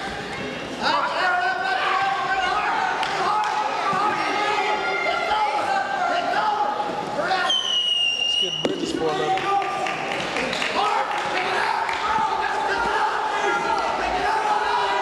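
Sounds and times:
spectators shouting: 0.8s - 7.5s, 10.6s - 15.0s
referee whistle blast: 7.4s - 8.9s.

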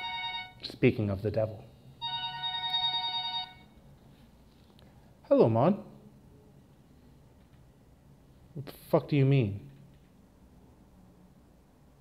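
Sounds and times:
mobile phone ringtone: 0.0s - 0.6s, 2.0s - 3.8s.

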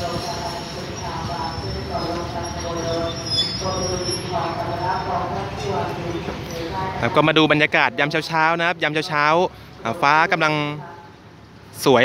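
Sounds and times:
diesel railcar engine running: 0.0s - 7.2s.

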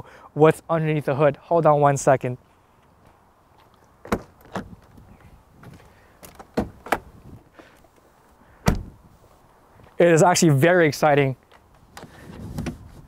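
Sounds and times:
car door shutting with thud: 8.6s - 9.0s.

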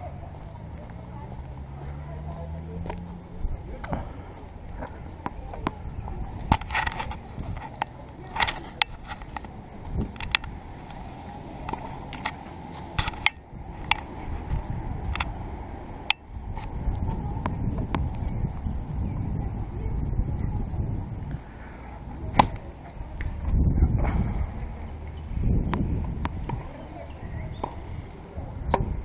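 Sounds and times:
low background noise: 0.0s - 29.0s
tennis ball bouncing: 3.8s - 14.1s, 22.3s - 23.0s, 25.1s - 26.7s, 27.5s - 27.9s
racket striking ball: 11.6s - 14.1s, 22.3s - 22.9s.

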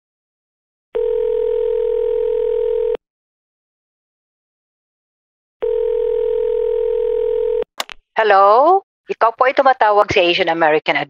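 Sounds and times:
telephone ringback tone: 1.0s - 3.0s, 5.6s - 7.6s.

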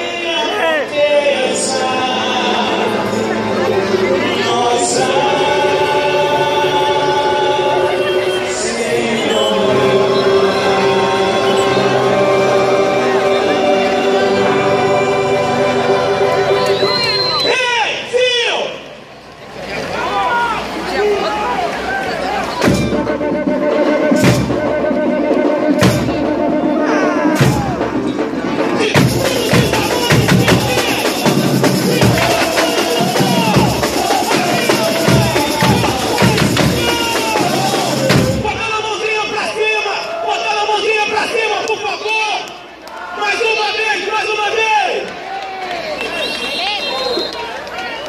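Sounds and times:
crowd singing together: 0.0s - 17.5s, 22.6s - 38.7s
samba parade music: 0.0s - 17.6s, 19.7s - 39.0s, 45.8s - 48.0s
sharp percussion hit: 22.6s - 38.7s.

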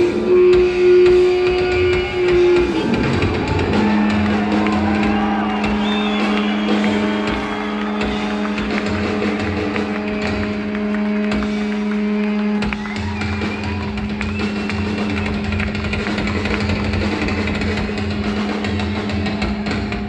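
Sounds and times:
distorted electric guitar drone: 0.0s - 20.0s.

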